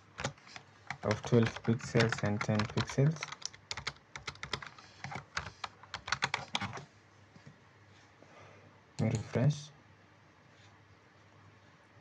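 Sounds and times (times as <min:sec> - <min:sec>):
computer keyboard typing: 0:00.2 - 0:06.8.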